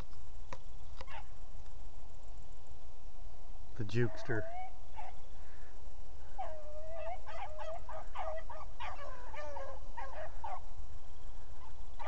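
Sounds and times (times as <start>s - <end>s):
beagles baying: 1.0s - 1.4s, 3.8s - 12.0s.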